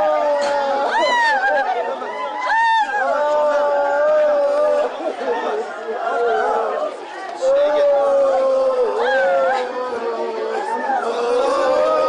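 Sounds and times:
crowd crying and wailing: 0.0 - 12.0.

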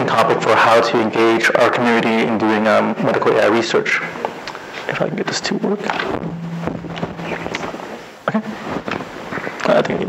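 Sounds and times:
low hum: 6.1 - 8.1.

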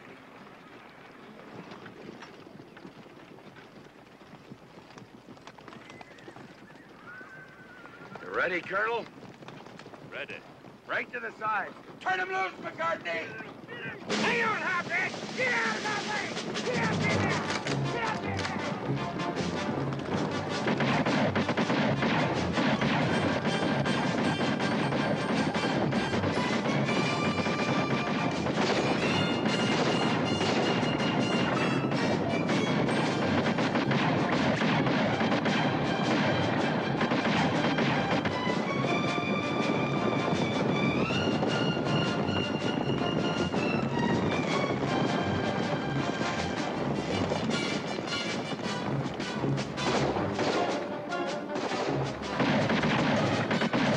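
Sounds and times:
galloping horses: 0.0 - 53.9
rifle fire: 14.0 - 39.7, 49.8 - 53.9
dramatic orchestral music: 14.1 - 53.9.

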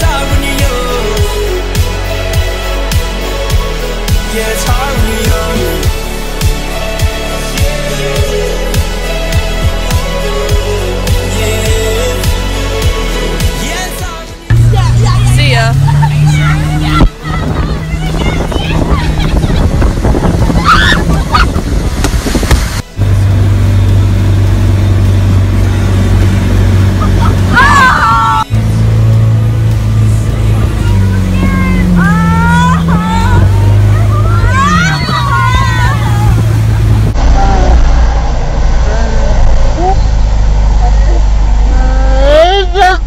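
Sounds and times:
motorboat engine droning: 0.0 - 43.0
voices calling and shouting: 10.5 - 21.7, 26.9 - 28.6, 30.1 - 38.2
wind and water noise: 14.3 - 43.0
low rumble of wind and spray: 14.5 - 27.6, 28.5 - 43.0.

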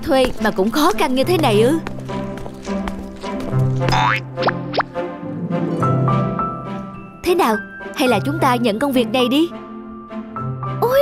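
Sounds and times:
light background music: 0.0 - 11.0.

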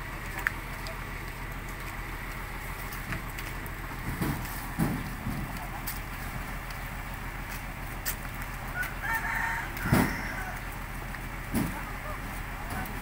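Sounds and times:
steady low hum: 0.0 - 13.0
dull thumps: 4.0 - 5.6
rooster crowing: 8.7 - 10.7.

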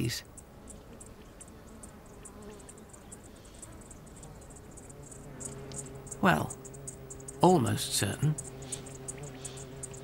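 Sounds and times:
insects chirping: 0.0 - 10.0.

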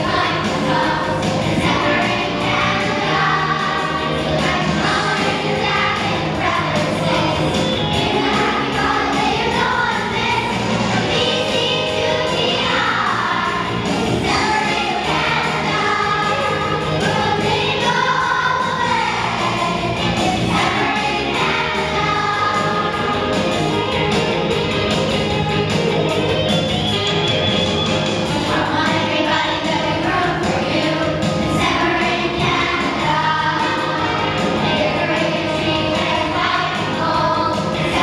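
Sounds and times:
children's choir singing: 0.0 - 38.0.

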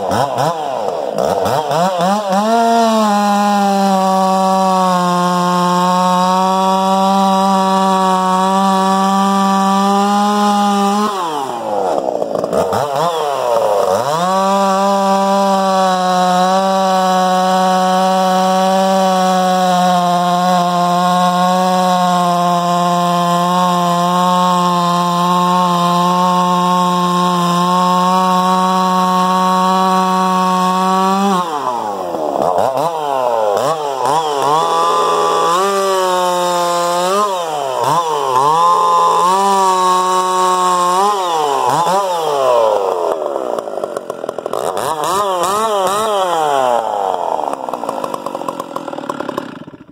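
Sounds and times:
chainsaw cutting and revving: 0.0 - 49.9.

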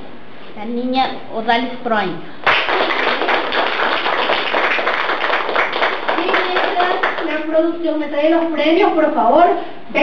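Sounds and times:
small group clapping: 2.4 - 7.8.

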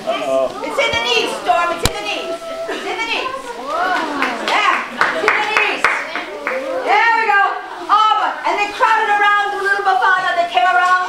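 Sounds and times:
children making whooing wind noises: 0.5 - 4.5
children hissing: 1.4 - 4.3.

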